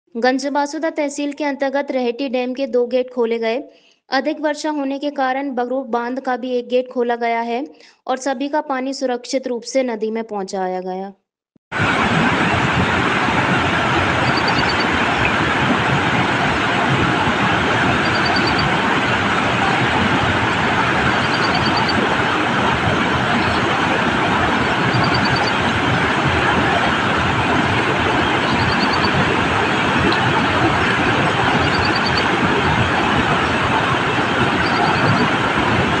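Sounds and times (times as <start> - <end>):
roaring water from spillway: 11.8 - 36.0.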